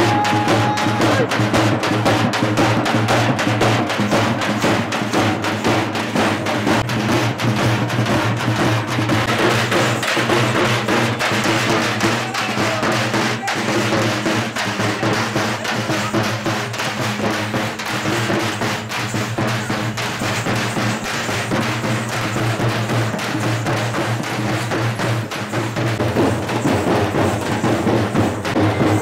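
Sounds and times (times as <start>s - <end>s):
snare and bass drums beating: 0.0s - 29.0s.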